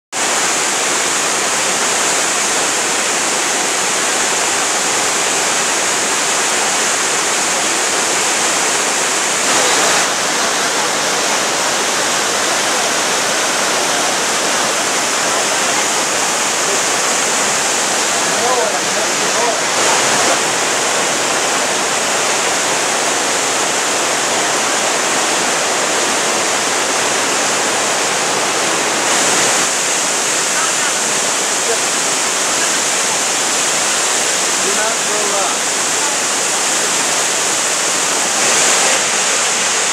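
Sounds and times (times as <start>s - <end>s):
waterfall rushing over rocks: 0.1s - 39.9s.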